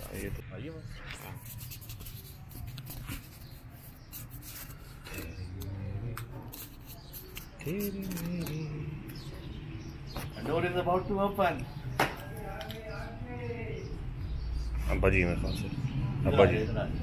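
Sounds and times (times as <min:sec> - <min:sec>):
low voices speaking: 0:05.0 - 0:17.0.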